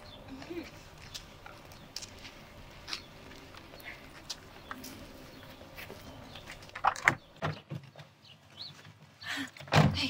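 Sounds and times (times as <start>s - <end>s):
footsteps on concrete: 0.4s - 6.8s.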